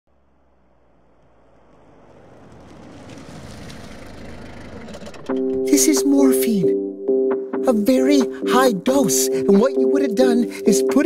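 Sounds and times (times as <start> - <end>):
car engine approaching: 0.0 - 7.6.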